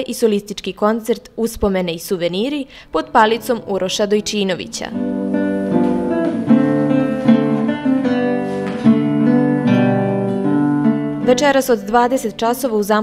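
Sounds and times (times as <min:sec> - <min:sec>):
fingerstyle classical guitar: 0:03.2 - 0:12.7.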